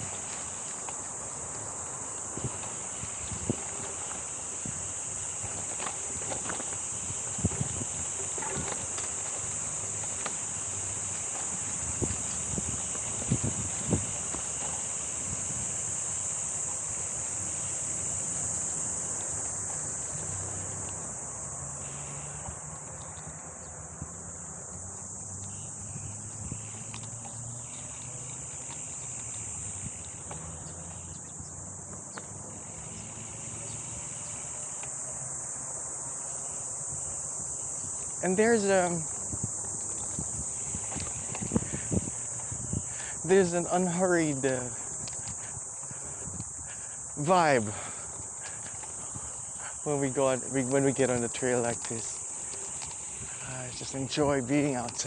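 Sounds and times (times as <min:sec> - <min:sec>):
bike knocking and rattling: 0:00.0 - 0:15.7
bike tyres rolling on dirt: 0:00.0 - 0:55.0
high-pitched insect chorus: 0:00.0 - 0:55.0.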